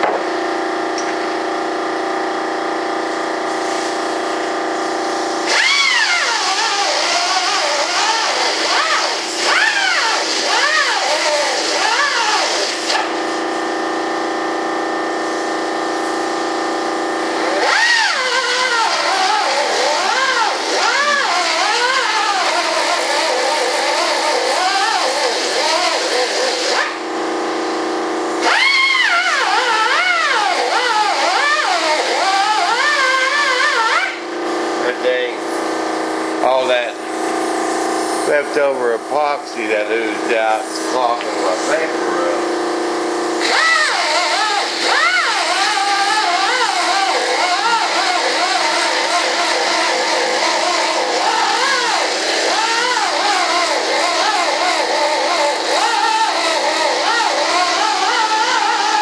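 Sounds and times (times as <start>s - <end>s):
electric power sander on wood: 5.3s - 13.5s, 17.3s - 27.1s, 28.4s - 59.0s.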